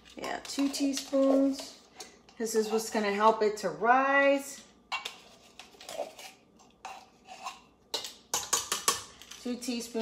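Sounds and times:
metal spoon clinking on steel bowl: 6.9 - 10.0.

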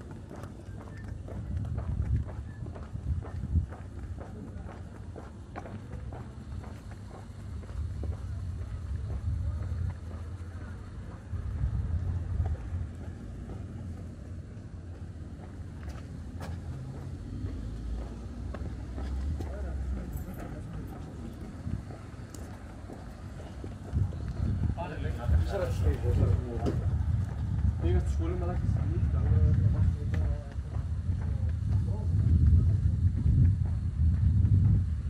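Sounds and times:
faint voices: 0.0 - 34.0
low street rumble: 0.0 - 35.0.

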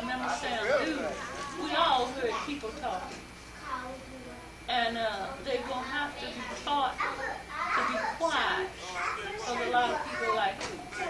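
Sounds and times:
children talking and playing: 0.0 - 11.0.

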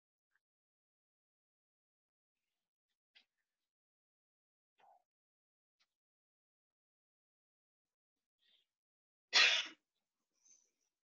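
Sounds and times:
sneeze-like breath burst: 9.4 - 9.8.

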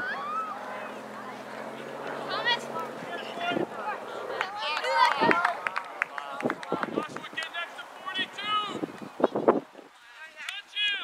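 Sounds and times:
people shouting: 0.0 - 1.4.

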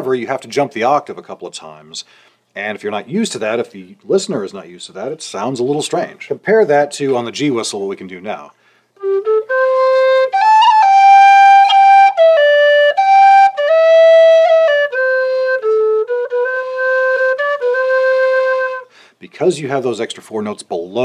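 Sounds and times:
low whistle slow melody: 9.0 - 18.9.

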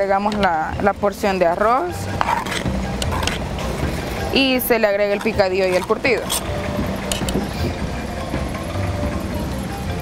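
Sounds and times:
low engine rumble: 0.0 - 10.0.

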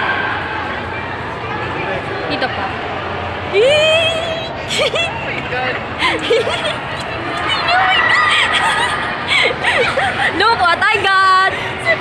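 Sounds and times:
crowd noise: 0.0 - 12.0
young women squealing and laughing: 6.0 - 10.8.

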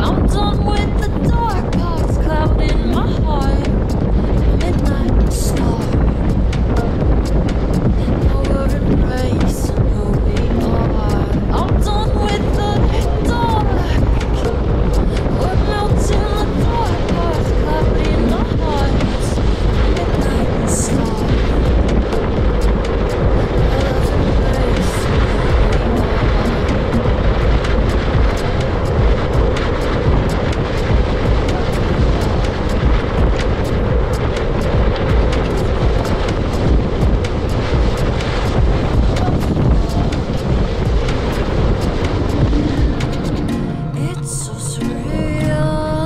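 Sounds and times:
wheels rumbling over hard sand: 0.0 - 44.0
background music: 0.0 - 46.0
wind noise on microphone: 0.0 - 46.0.

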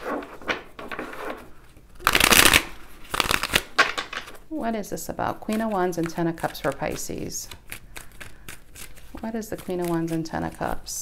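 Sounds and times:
cards being shuffled: 2.0 - 4.4, 5.4 - 10.9.

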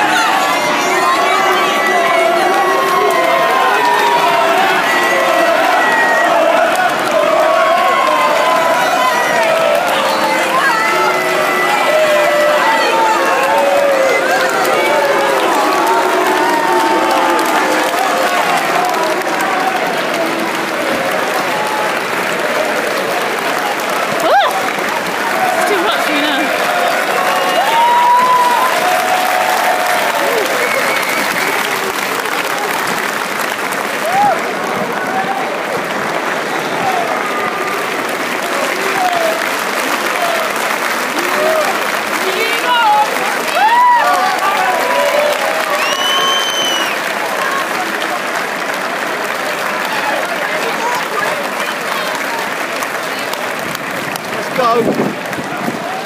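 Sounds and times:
shouts and voices: 0.0 - 22.7, 23.6 - 32.9, 36.6 - 48.4, 54.3 - 56.0
crowd applauding: 0.0 - 56.0.

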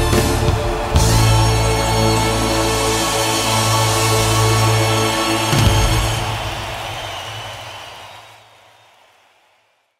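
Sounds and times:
stadium crowd noise: 0.0 - 9.9.

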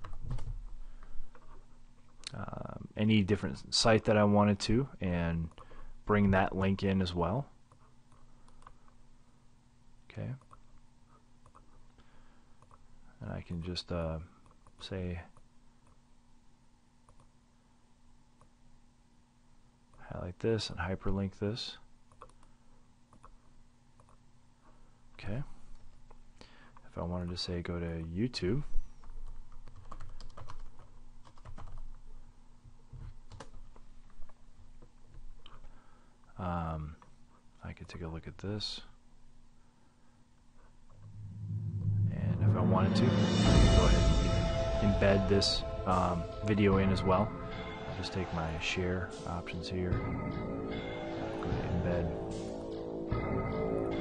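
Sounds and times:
computer mouse clicks: 7.7 - 8.9, 17.1 - 17.3, 22.1 - 22.5, 23.1 - 23.4, 24.0 - 24.2
typing on computer keyboard: 29.0 - 32.0, 33.3 - 33.8.

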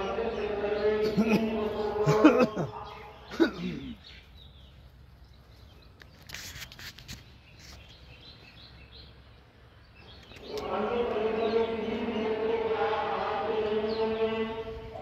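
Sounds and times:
group of voices chanting: 0.0 - 4.0, 10.4 - 15.0.

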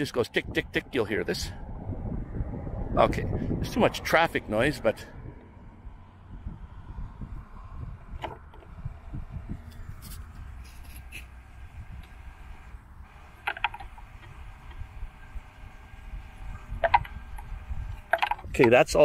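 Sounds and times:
low traffic rumble: 0.0 - 19.0
small gear motor whining: 7.6 - 18.4
sharp clicks: 13.1 - 14.9, 16.6 - 18.8.

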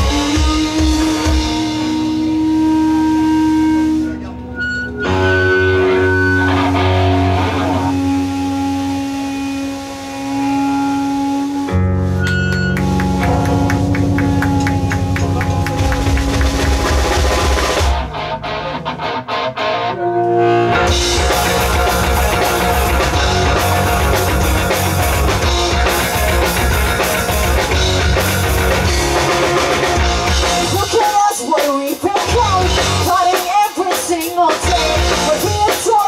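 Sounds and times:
pop-punk band playing: 0.0 - 36.0.

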